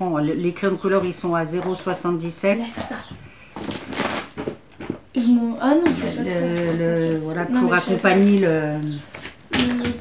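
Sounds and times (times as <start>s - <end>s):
rustling of handled items: 2.6s - 10.0s.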